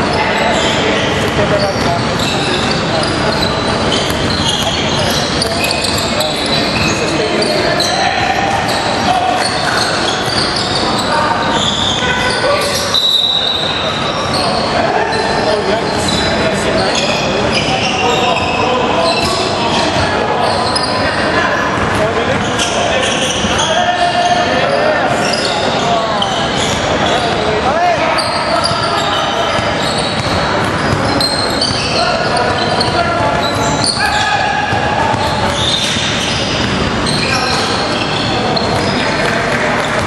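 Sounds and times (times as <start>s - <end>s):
players calling out: 0.0s - 40.0s.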